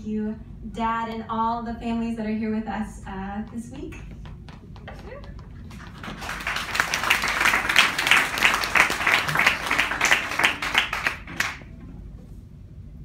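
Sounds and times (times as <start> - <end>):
audience applause: 5.6 - 11.7.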